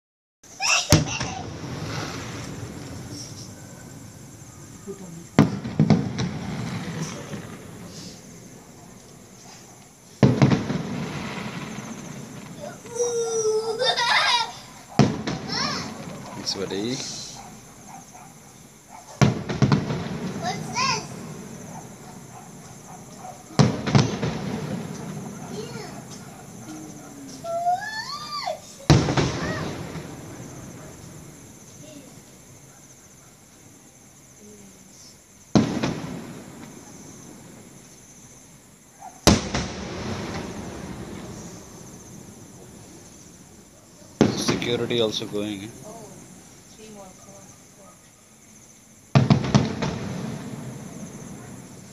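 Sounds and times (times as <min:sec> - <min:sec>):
firework crackling: 0:00.5 - 0:32.7, 0:33.6 - 0:47.6, 0:49.0 - 0:51.9
firework bang: 0:00.6 - 0:09.6, 0:10.2 - 0:18.0, 0:19.2 - 0:32.6, 0:35.5 - 0:37.9, 0:39.2 - 0:47.0, 0:49.1 - 0:51.9.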